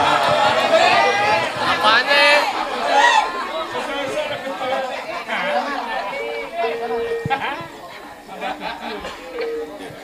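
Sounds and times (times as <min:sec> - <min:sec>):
people chattering: 0:00.0 - 0:10.0
steady held tone: 0:05.8 - 0:10.0.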